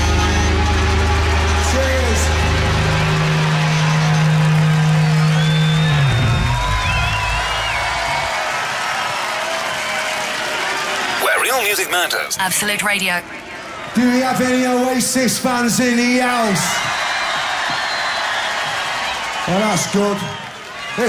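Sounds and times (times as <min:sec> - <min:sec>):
crowd cheering: 0:00.0 - 0:21.0
high wavering whistle: 0:04.9 - 0:08.1.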